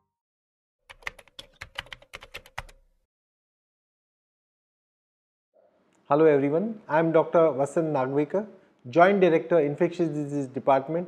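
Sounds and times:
computer keyboard typing: 0.9 - 2.8.

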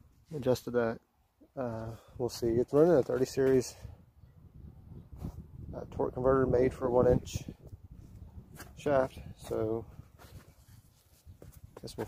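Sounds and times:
man speaking: 0.3 - 3.9, 8.8 - 9.9.

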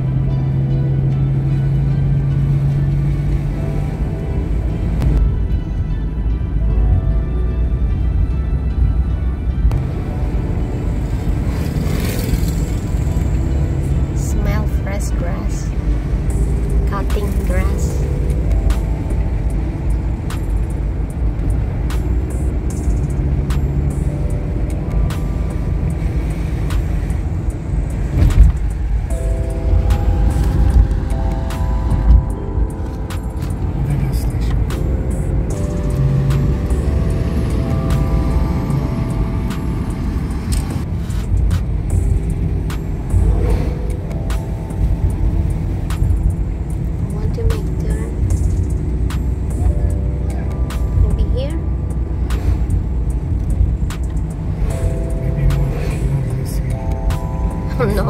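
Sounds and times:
car road and engine rumble: 0.0 - 58.0
melodic music: 0.0 - 58.0
loud thumps: 28.1 - 28.8.

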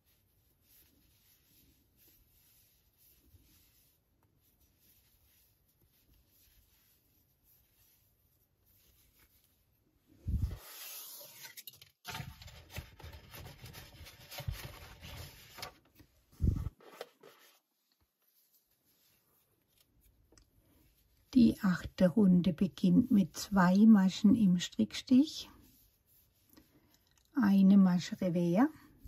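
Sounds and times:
yarn and crochet hook rustling: 0.0 - 12.1, 12.7 - 29.0.

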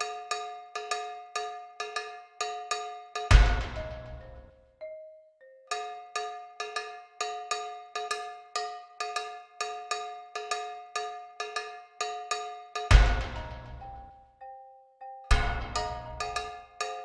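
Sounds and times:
bell-like struck notes music: 0.0 - 9.4, 11.6 - 17.0
bass hit: 3.4 - 4.2, 12.9 - 13.9, 15.3 - 16.0.

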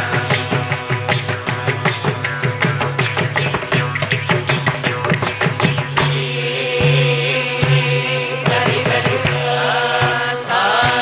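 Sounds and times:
drum strokes: 0.0 - 11.0
woman singing: 6.3 - 11.0.

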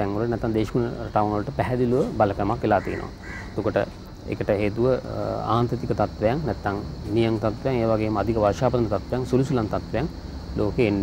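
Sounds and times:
man speaking: 0.0 - 11.0
crow cawing: 2.7 - 3.7.

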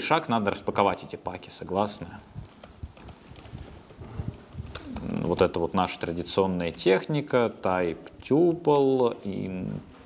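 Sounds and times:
computer keyboard keystrokes: 2.4 - 9.6.

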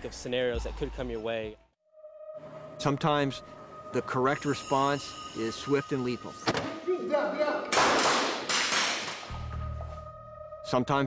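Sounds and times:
low droning music: 1.9 - 7.6, 9.3 - 11.0
loud sharp bangs: 7.7 - 9.3.

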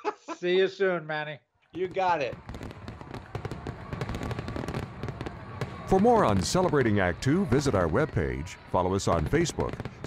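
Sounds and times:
fireworks crackling: 1.8 - 10.0.

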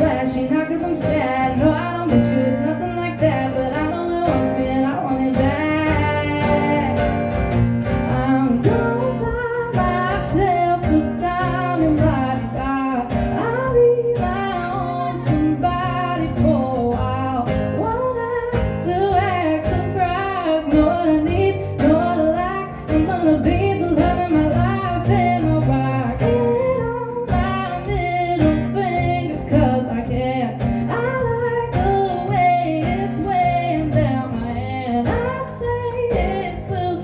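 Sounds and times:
strummed acoustic guitar: 0.0 - 37.0
woman singing: 0.0 - 37.0.

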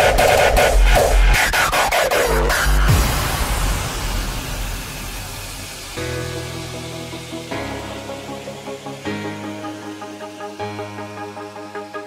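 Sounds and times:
hissing noise wash: 2.9 - 9.1.

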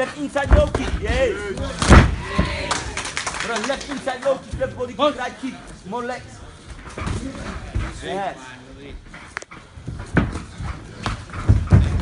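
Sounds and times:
dull thuds of kicks and punches: 1.8 - 2.6.

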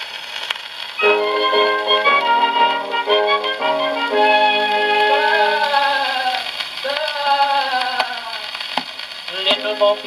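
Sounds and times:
orchestral music on gramophone: 1.0 - 6.0, 9.5 - 10.0
tenor voice singing: 4.8 - 6.5.

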